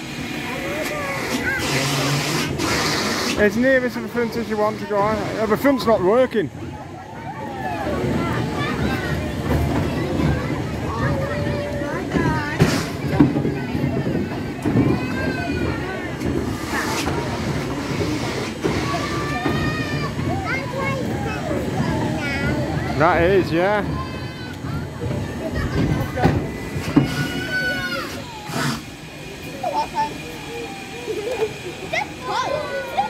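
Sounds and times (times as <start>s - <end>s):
children talking and calling out: 0.0s - 33.0s
rollercoaster clattering on track: 0.0s - 33.0s
child's sharp rising call: 26.8s - 28.8s.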